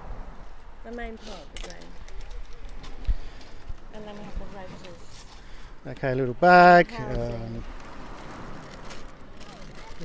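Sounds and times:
wind: 0.0s - 10.0s
sea surf: 3.1s - 10.0s.

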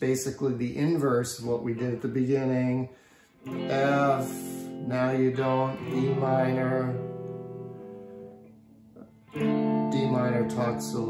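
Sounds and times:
electric guitar chord ringing: 3.2s - 11.0s
guitar pick click: 3.5s - 7.8s, 8.9s - 11.0s.

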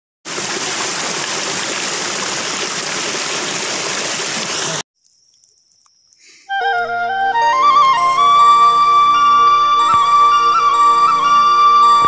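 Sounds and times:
stream splashing over rocks: 0.3s - 4.8s.

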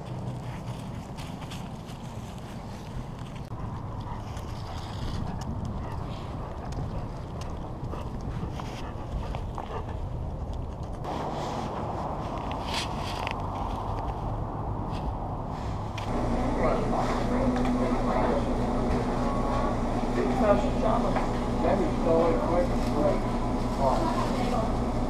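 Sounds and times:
steady low hum: 0.0s - 25.0s
indistinct voices talking: 16.1s - 25.0s.

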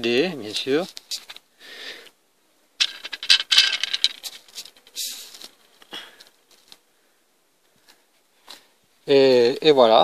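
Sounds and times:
small hard objects clattering: 2.8s - 6.8s
short rustle: 2.8s - 6.9s.

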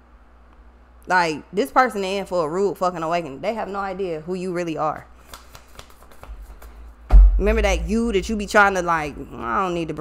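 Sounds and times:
cards shuffling clicks: 5.2s - 6.8s.

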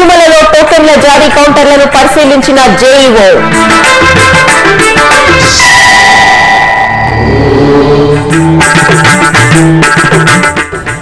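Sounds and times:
tabla rhythm: 0.0s - 6.3s, 7.9s - 11.0s
news theme music: 0.0s - 11.0s.

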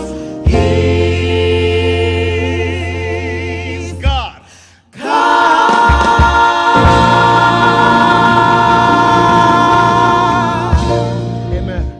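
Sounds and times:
gospel singers holding chord: 0.0s - 11.5s
keyboard: 0.0s - 11.9s
electric bass guitar: 6.8s - 11.9s.

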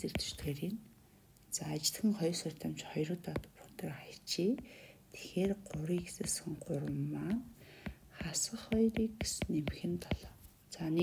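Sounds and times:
stylus tapping on glass screen: 0.0s - 0.6s, 3.2s - 3.6s, 4.5s - 10.4s.

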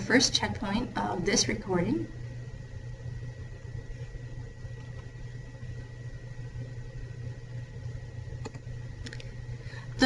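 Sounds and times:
faint high whine: 0.0s - 10.0s
low background hum: 0.0s - 10.0s.

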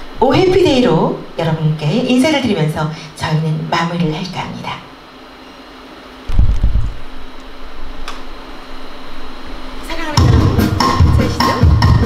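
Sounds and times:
deep rumbling thump: 6.3s - 7.0s.

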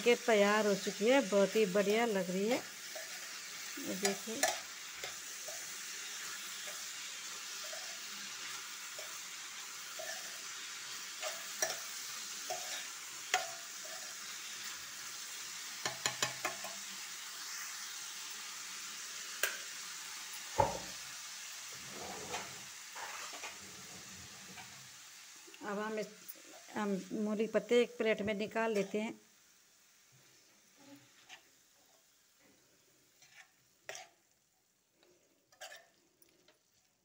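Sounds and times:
food sizzling in a pan: 0.0s - 37.0s
metal spoon scraping a pan: 1.8s - 16.8s, 21.8s - 24.9s, 28.7s - 29.1s, 30.8s - 32.0s, 33.1s - 34.2s, 35.4s - 36.6s
knock: 20.6s - 20.9s.

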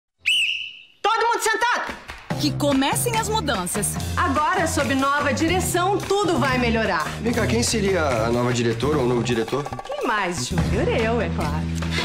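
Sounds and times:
high whistle tone swooping up: 0.2s - 0.9s.

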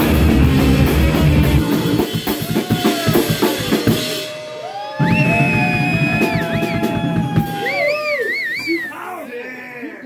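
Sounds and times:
drum kit playing: 0.0s - 8.1s.

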